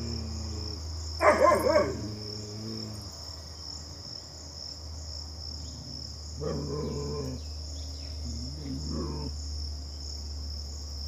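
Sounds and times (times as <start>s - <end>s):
insects chirring: 0.0s - 11.0s
dog howling call: 1.2s - 3.0s.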